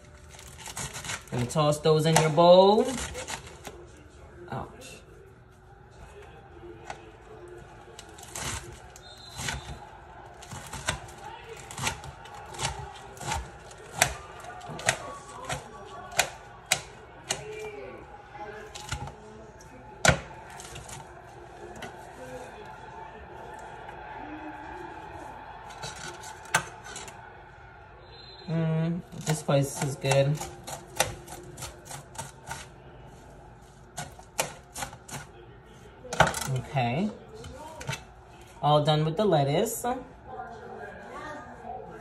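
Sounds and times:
rustling of cut leaves: 0.0 - 3.7
knife chopping on metal tray: 10.4 - 17.6, 20.0 - 21.0, 29.2 - 32.7, 34.0 - 35.3, 36.1 - 36.6.

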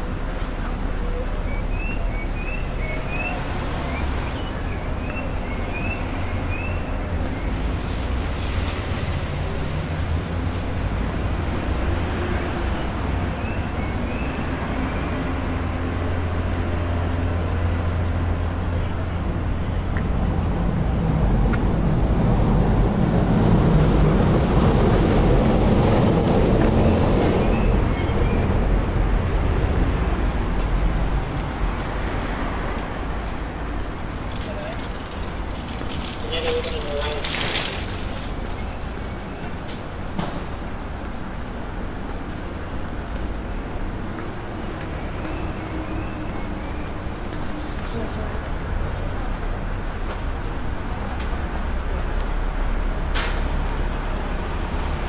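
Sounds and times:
city traffic rumble: 0.0 - 55.0
heavy vehicle passing: 6.9 - 38.9.

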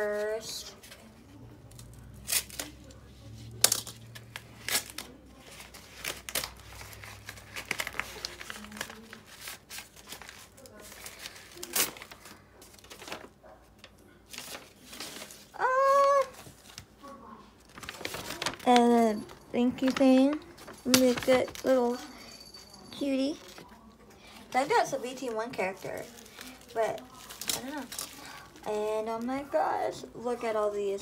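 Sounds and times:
paper and plastic tearing: 1.7 - 17.0, 17.6 - 19.2, 24.6 - 29.4.

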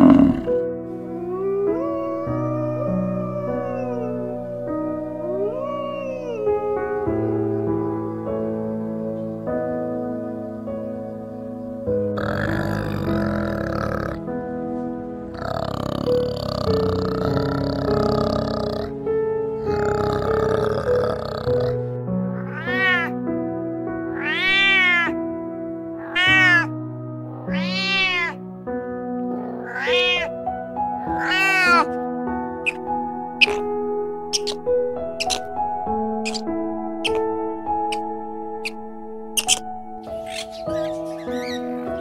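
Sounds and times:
long noisy animal calls: 0.0 - 9.4, 12.1 - 14.3, 15.3 - 23.2, 24.1 - 25.2, 26.0 - 28.4, 29.2 - 30.4, 31.0 - 32.0, 32.6 - 38.8, 39.4 - 42.0
soft piano music: 0.0 - 42.0
cat meowing: 1.2 - 8.2, 22.4 - 23.2, 24.1 - 25.2, 26.0 - 26.7, 27.3 - 28.4, 29.3 - 30.4, 31.0 - 32.0, 32.7 - 33.7, 34.4 - 34.6, 35.2 - 35.5, 36.3 - 38.8, 39.4 - 42.0.

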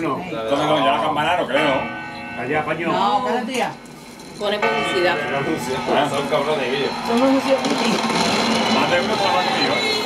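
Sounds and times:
television advert music: 4.6 - 10.0.

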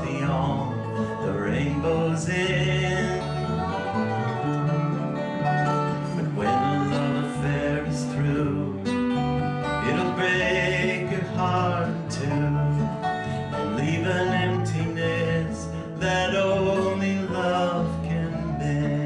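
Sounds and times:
electric bass: 0.0 - 19.0
sliding dobro notes: 0.0 - 19.0
strummed acoustic guitar: 0.0 - 19.0.

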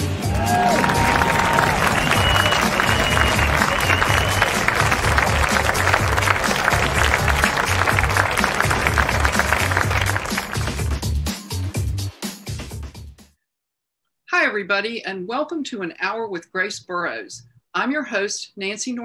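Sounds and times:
crowd applause: 0.0 - 11.0
music with pulsing bass: 0.0 - 13.2
short whistles: 1.8 - 4.6.

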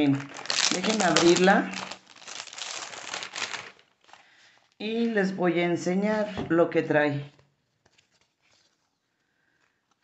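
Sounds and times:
plastic wrapping crinkling: 0.0 - 5.2, 7.4 - 10.0.

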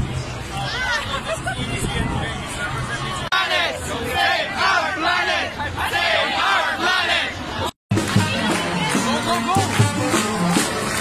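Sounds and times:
crowd shouting and chanting: 0.1 - 11.0.

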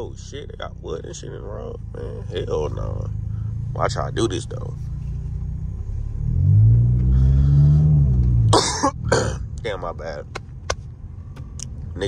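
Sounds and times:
car engine revving: 0.0 - 12.0
person clearing throat: 8.5 - 9.5.

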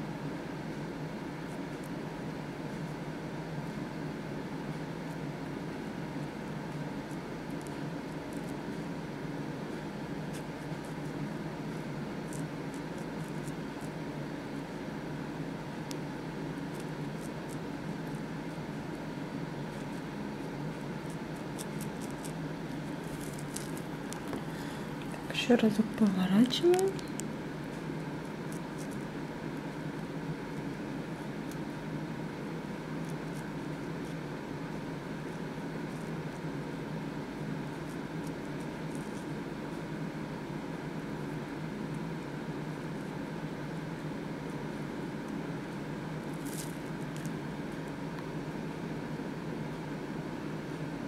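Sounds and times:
low background hum: 0.0 - 51.0.

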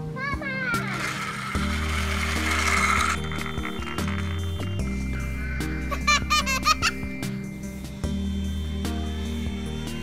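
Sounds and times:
background music: 0.0 - 10.0
child squealing with laughter: 5.9 - 7.0.

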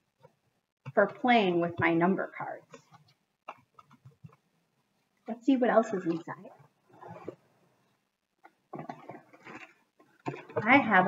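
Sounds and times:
plastic rustling and crinkling: 8.4 - 11.0.

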